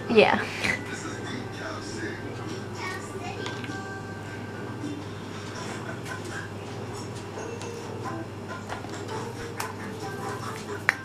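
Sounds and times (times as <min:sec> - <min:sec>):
background voices: 0:00.0 - 0:07.4
faint music: 0:00.0 - 0:11.0
low steady hum: 0:00.0 - 0:11.0.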